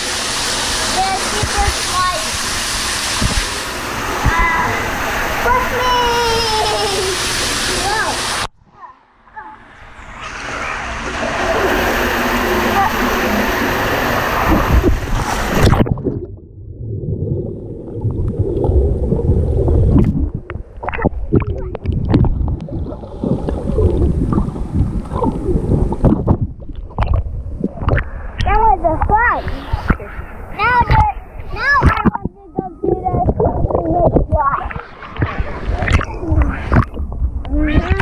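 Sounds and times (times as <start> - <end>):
water rushing down tube slide: 0.0 - 8.5, 9.4 - 38.0
muffled water sloshing and gurgling: 0.0 - 8.6, 9.4 - 38.0
plunge into pool: 9.4 - 28.5.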